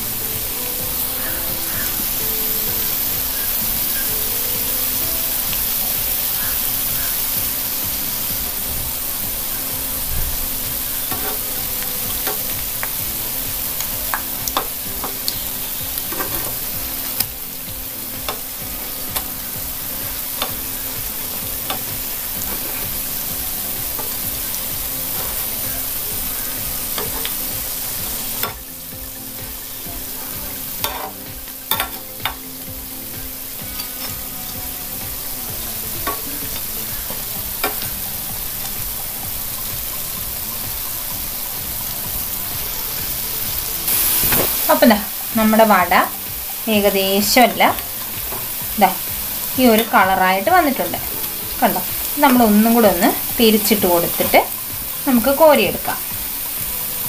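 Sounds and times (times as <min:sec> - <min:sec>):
oil sizzling in a pan: 0:00.0 - 0:57.0.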